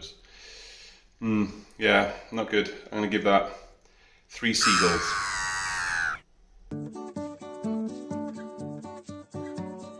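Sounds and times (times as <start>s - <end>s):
seagull squawking: 4.6s - 6.2s.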